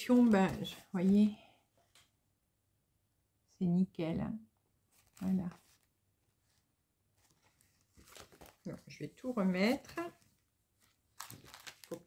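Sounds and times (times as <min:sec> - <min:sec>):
plastic packaging crinkling: 0:07.9 - 0:08.8, 0:10.8 - 0:12.0.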